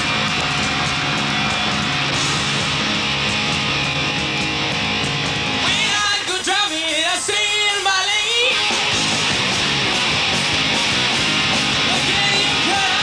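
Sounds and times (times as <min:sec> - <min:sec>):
punk rock band playing: 0:00.0 - 0:13.0.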